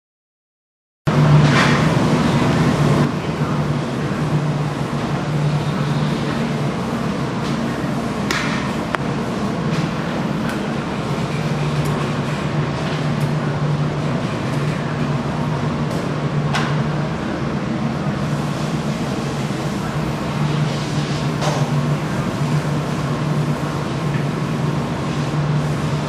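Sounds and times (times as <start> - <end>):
steady low hum: 1.1 - 26.0.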